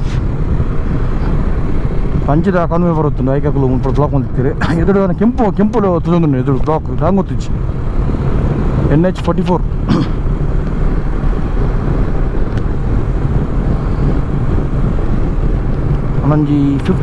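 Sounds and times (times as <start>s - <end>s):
road noise: 0.0s - 17.0s
wind rushing over microphone: 0.0s - 17.0s
motorcycle engine: 7.0s - 16.8s.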